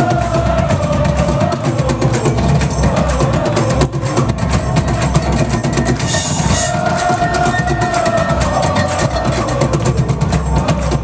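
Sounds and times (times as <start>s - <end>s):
fast busy drumming: 0.0s - 11.0s
rock band playing loudly: 0.0s - 11.0s.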